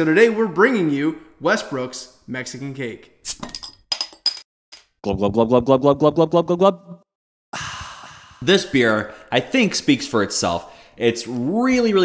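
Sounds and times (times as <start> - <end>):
glasses clinking: 3.4 - 4.4.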